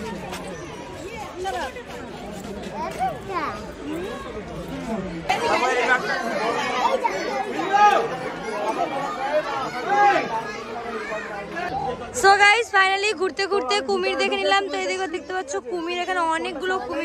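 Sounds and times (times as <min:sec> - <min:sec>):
people chattering: 0:00.0 - 0:17.0.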